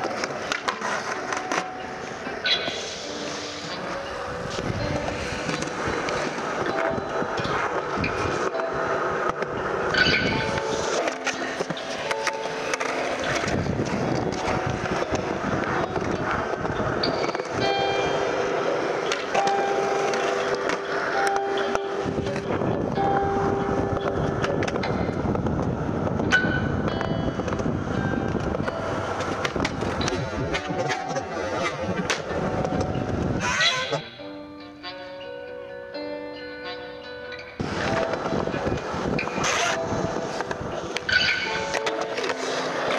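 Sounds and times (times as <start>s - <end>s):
skateboard clacks: 0.0s - 34.2s, 37.6s - 42.9s
music track: 0.0s - 42.9s
skateboard wheels rolling on concrete: 0.0s - 42.9s.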